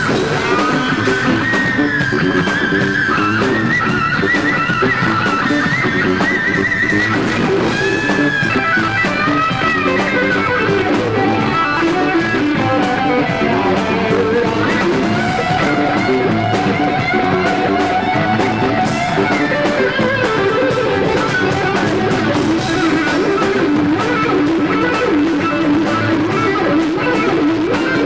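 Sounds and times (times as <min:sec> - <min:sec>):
electric lead guitar: 0:00.0 - 0:28.0
rock band backing: 0:00.0 - 0:28.0.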